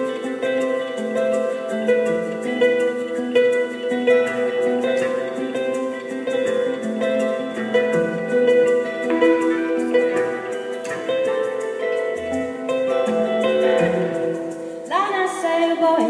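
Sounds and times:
sustained chords: 0.0 - 14.9
plucked-string melody: 0.0 - 16.0.

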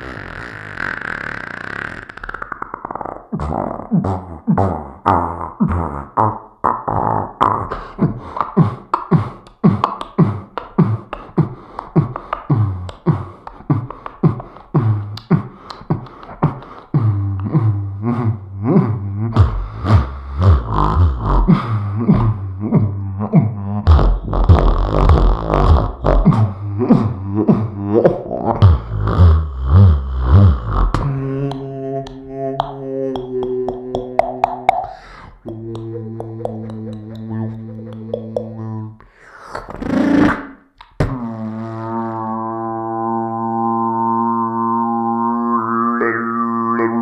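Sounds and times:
beatboxed kick-drum sounds: 0.0 - 23.0, 23.7 - 41.2
beatboxing vocal bass drone: 0.0 - 47.0
beatboxer breath rush: 7.7 - 18.2, 19.3 - 22.2, 34.8 - 35.5, 39.0 - 40.4
mouth click: 7.7 - 41.4
sliding vocal pitch sweeps: 12.1 - 47.0.

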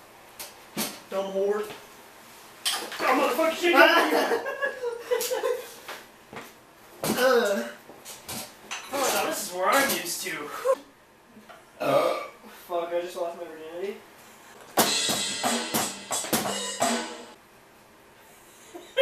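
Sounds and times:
electronic drum and cymbal hits: 14.8 - 17.4.

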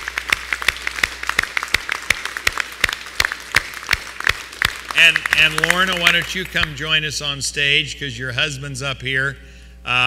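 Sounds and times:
close single hand claps: 0.0 - 6.8
crowd applauding: 0.0 - 7.0.

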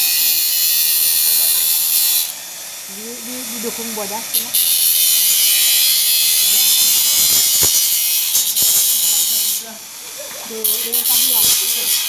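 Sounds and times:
angle grinder grinding steel: 0.0 - 2.4, 3.0 - 9.8, 10.5 - 12.0.

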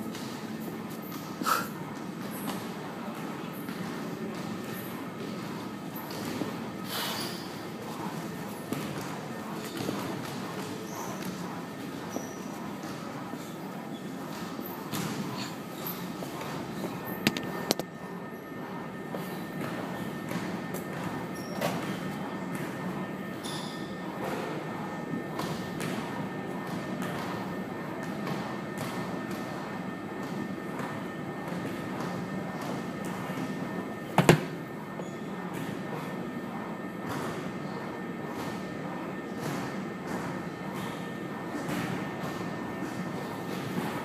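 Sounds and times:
gym room hum: 0.0 - 44.0
loud sharp knock: 34.2 - 34.5.

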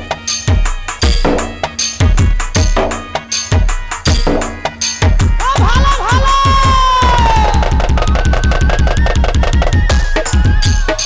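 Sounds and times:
dhol drum beating fast rhythm: 0.0 - 11.0.

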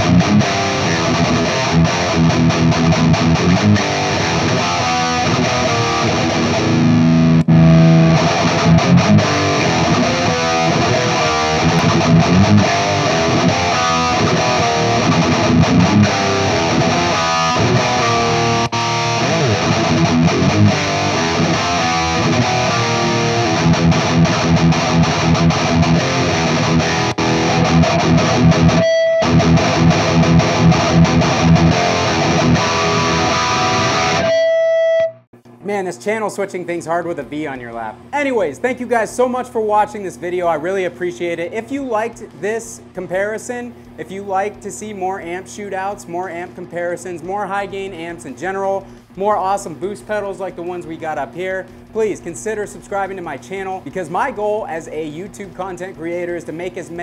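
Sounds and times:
distorted electric guitar riff: 0.0 - 35.5.

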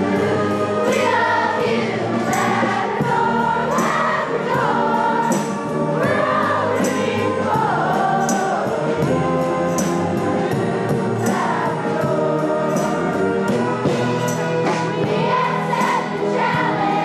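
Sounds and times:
children's choir singing: 0.0 - 17.0
instrumental accompaniment with beat: 0.0 - 17.0.

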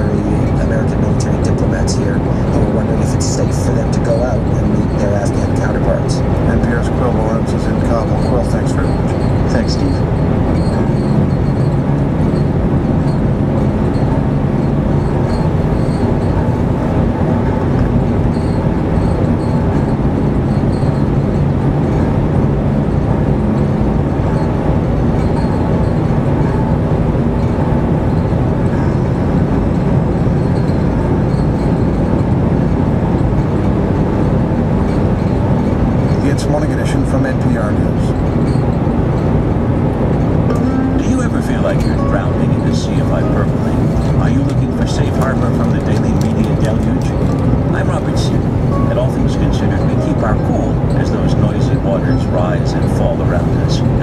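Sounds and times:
faint radio talk: 0.0 - 10.0, 36.1 - 38.2, 40.5 - 54.0
car engine drone: 0.0 - 54.0.

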